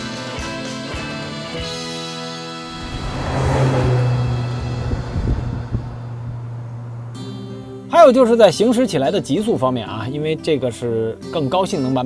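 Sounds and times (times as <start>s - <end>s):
car engine driving past: 2.5s - 7.8s.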